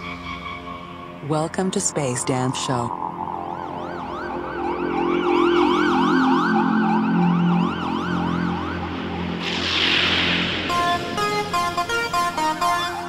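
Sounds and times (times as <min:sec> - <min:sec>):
low synth chords: 0:00.0 - 0:13.0
synthesizer tone gliding like a siren: 0:00.0 - 0:13.0
rushing white-noise sweep: 0:08.6 - 0:13.0.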